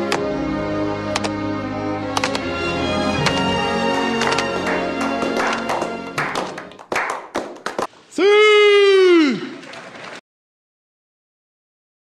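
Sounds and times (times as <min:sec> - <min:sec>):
music: 0:00.0 - 0:06.9
people clapping slowly: 0:03.1 - 0:08.0.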